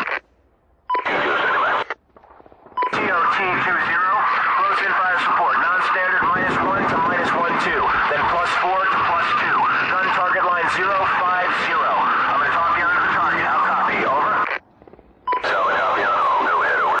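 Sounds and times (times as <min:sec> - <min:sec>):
tinny radio voice chatter: 0:00.0 - 0:00.2, 0:00.9 - 0:02.0, 0:02.8 - 0:14.6, 0:15.3 - 0:17.0.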